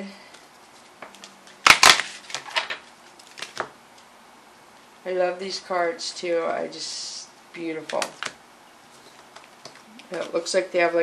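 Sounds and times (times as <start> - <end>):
cards snapping: 1.0 - 2.6, 3.2 - 3.7.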